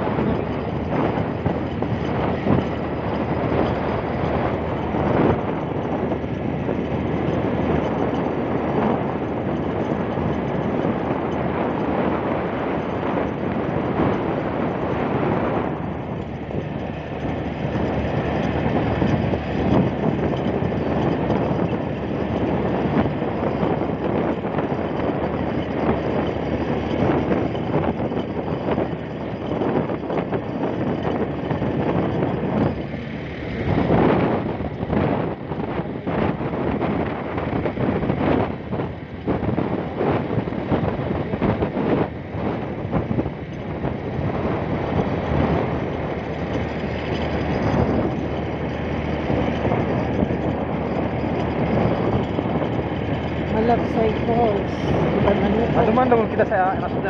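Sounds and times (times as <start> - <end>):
motorcycle engine: 0.0 - 57.0
road noise: 0.0 - 57.0
wind rushing over microphone: 0.0 - 57.0.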